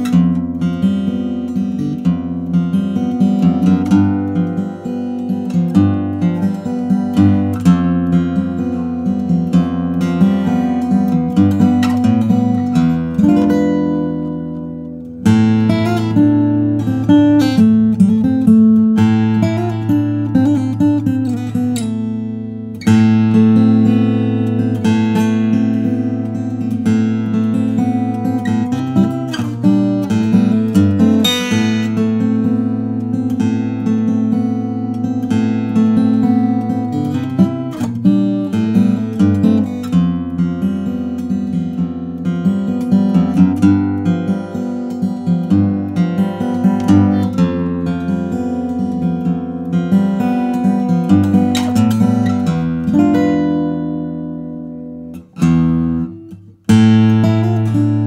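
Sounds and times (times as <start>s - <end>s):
fingerpicked acoustic guitar: 0.0s - 58.0s.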